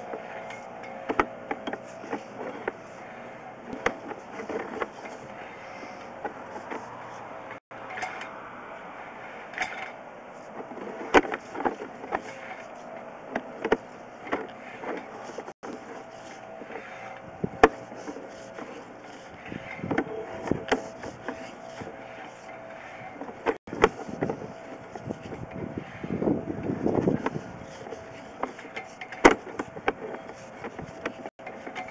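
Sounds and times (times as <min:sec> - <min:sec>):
cable clicks and knocks: 0:00.0 - 0:02.8, 0:03.7 - 0:05.3, 0:09.5 - 0:16.0, 0:17.6 - 0:25.6, 0:26.6 - 0:31.9
equipment hum: 0:00.0 - 0:31.9.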